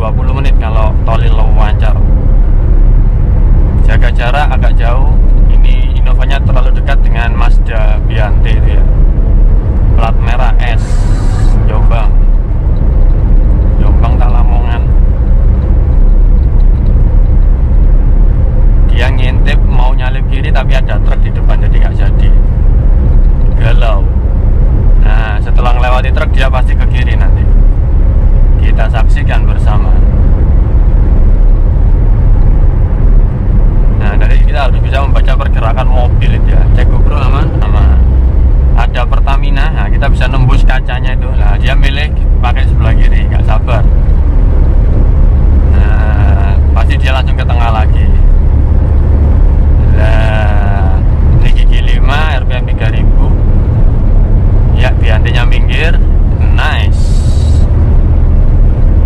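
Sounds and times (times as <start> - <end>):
people talking: 0.0 - 2.1, 3.8 - 8.9, 10.0 - 12.3, 13.8 - 14.9, 18.9 - 22.4, 23.5 - 24.1, 25.0 - 27.5, 28.6 - 30.1, 34.0 - 38.1, 38.8 - 43.9, 45.7 - 48.3, 49.8 - 53.4, 54.7 - 57.6
car cabin road and engine drone: 0.0 - 59.0.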